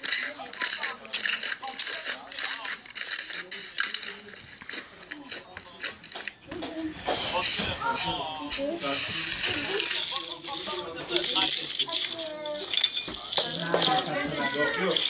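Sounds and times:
slime crackling and popping: 0.0s - 6.4s
indistinct voices: 0.0s - 15.0s.

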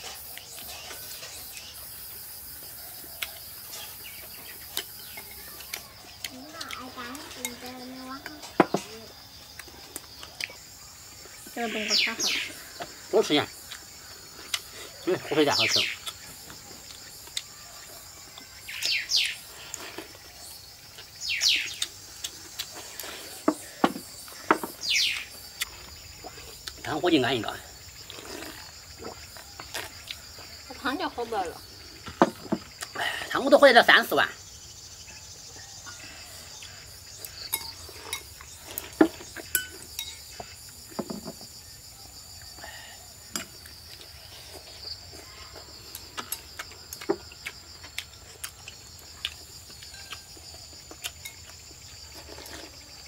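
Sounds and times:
high insect drone: 0.0s - 53.0s
slurping and chewing: 13.6s - 15.0s, 16.0s - 24.5s, 25.1s - 26.9s, 27.9s - 30.6s, 36.4s - 40.8s, 43.4s - 53.0s.

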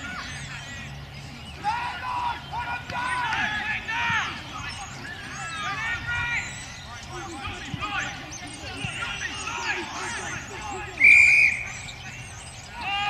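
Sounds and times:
players and spectators shouting: 0.0s - 13.0s
shrill referee whistle blast: 11.0s - 11.8s.

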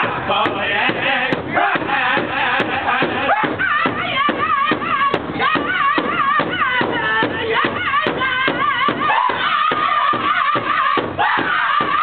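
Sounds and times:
group singing in high wavering voices: 0.0s - 12.0s
large hand drum beating: 0.0s - 12.0s.

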